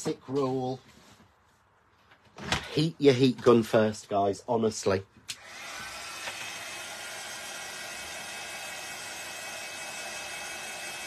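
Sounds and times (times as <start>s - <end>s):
heat gun fan whooshing: 5.3s - 11.0s.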